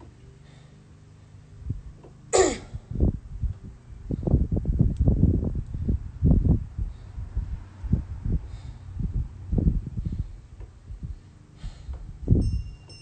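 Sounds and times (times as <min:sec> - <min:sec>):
low rumbling and thumping: 0:01.6 - 0:12.7
person sharp noisy exhalation: 0:02.3 - 0:02.9.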